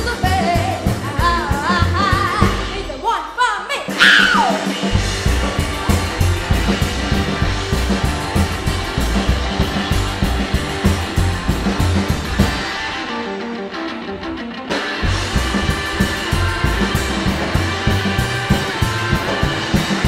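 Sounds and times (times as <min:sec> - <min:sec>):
upright bass: 0:00.0 - 0:03.4, 0:04.0 - 0:13.0, 0:14.9 - 0:20.0
drum kit: 0:00.0 - 0:20.0
electric guitar solo: 0:11.4 - 0:20.0.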